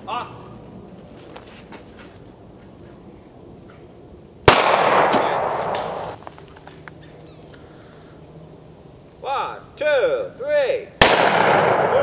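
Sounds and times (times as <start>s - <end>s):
gunshot: 4.5s - 6.2s, 11.0s - 12.0s.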